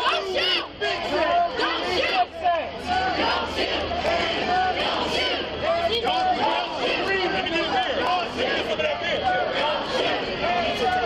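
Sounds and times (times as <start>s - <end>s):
crowd of protesters shouting: 0.0s - 11.0s.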